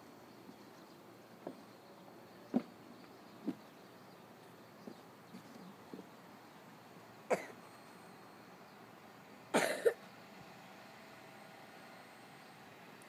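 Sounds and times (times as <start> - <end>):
person coughing: 7.3 - 7.6, 9.6 - 10.0.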